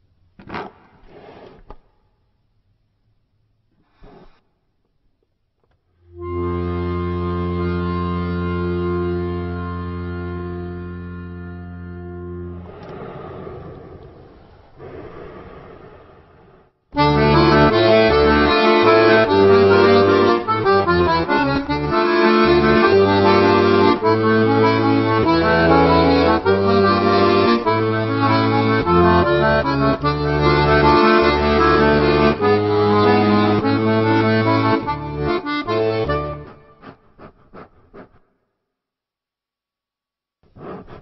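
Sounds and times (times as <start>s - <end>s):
accordion held chord: 6.1s - 12.6s, 17.0s - 36.6s
lively accordion tune: 6.1s - 12.6s, 17.0s - 38.1s.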